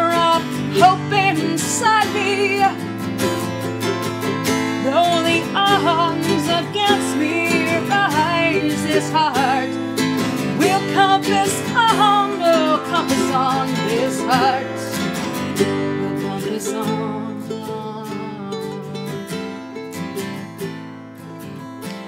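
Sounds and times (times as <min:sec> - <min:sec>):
woman singing: 0:00.0 - 0:03.5, 0:04.6 - 0:19.2
strummed acoustic guitar: 0:00.0 - 0:22.0
ukulele: 0:00.0 - 0:22.0.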